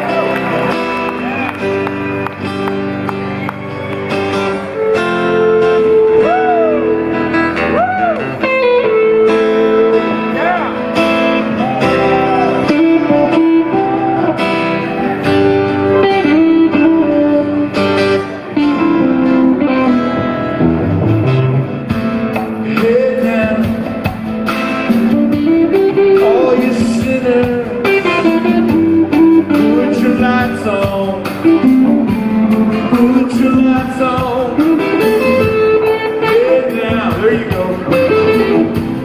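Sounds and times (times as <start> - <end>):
electric guitar lead: 0.0 - 39.0
rhythm guitar: 0.0 - 39.0
drums and percussion: 20.8 - 39.0.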